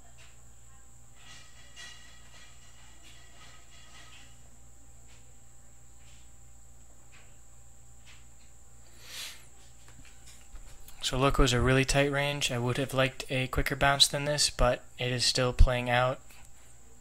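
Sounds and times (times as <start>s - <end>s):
high-pitched electrical whine: 0.0s - 17.0s.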